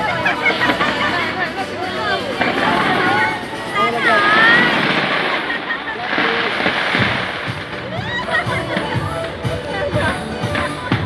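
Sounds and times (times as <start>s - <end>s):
crowd shouting and cheering: 0.0s - 11.0s
fireworks rumbling and crackling: 0.0s - 11.0s.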